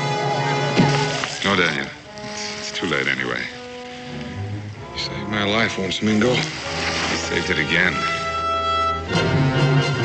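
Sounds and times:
orchestral music: 0:00.0 - 0:10.0.

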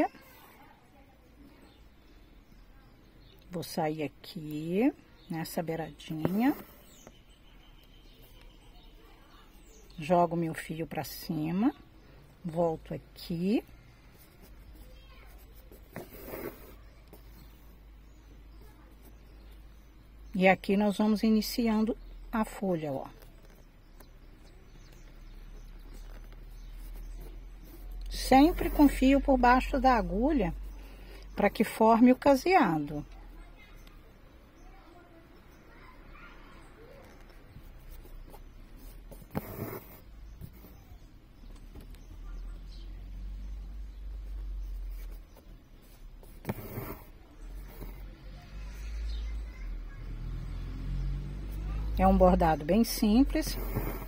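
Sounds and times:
thread rasping through canvas: 0:05.8 - 0:07.2, 0:12.4 - 0:19.8, 0:20.4 - 0:33.1, 0:36.9 - 0:42.2, 0:43.5 - 0:49.4, 0:51.4 - 0:54.0.

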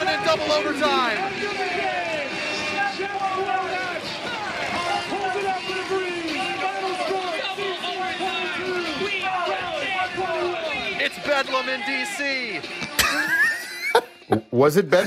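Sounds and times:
excited sports commentary: 0:00.0 - 0:12.8
crowd noise: 0:00.0 - 0:14.5.

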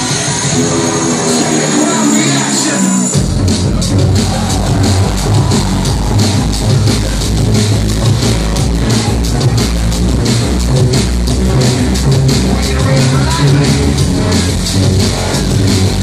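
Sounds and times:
electronic dance music: 0:00.0 - 0:16.0.

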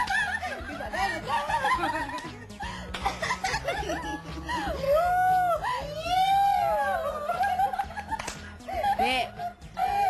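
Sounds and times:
women laughing while speaking: 0:00.0 - 0:06.0.

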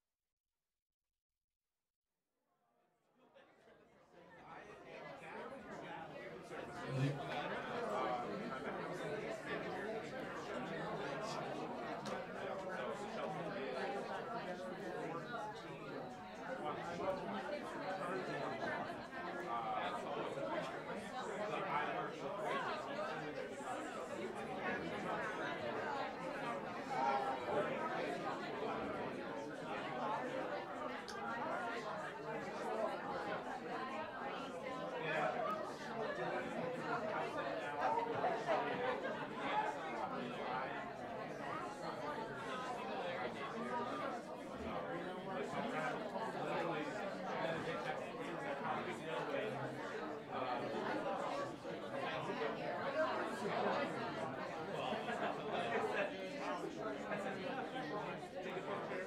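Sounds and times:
audience chatter: 0:03.6 - 0:59.0.

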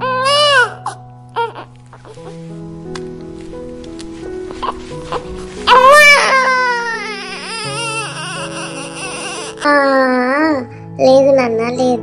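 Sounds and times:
baby crying: 0:00.0 - 0:02.1, 0:04.6 - 0:10.6
background music: 0:00.0 - 0:12.0.

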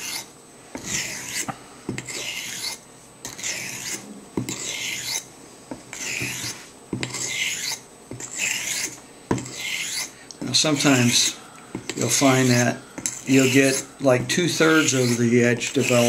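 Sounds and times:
razor scraping on whetstone: 0:00.0 - 0:05.3, 0:05.9 - 0:16.0.

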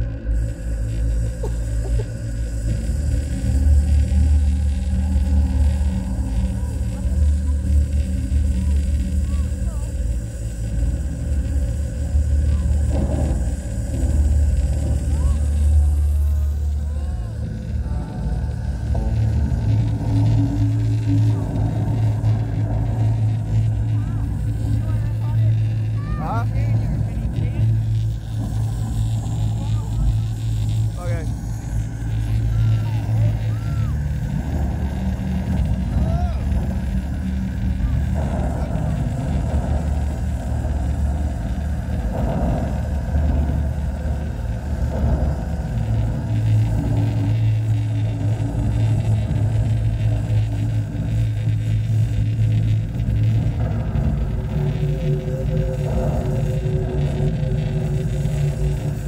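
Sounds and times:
deep steady drone music: 0:00.0 - 0:59.0
crowd voices: 0:04.8 - 0:10.5, 0:12.0 - 0:59.0.

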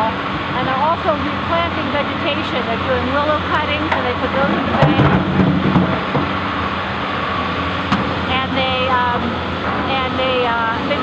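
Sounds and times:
excavator diesel engine running: 0:00.0 - 0:11.0.

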